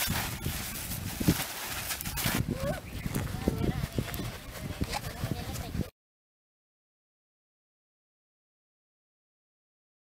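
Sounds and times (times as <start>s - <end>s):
noisy outdoor background: 0.0s - 5.9s.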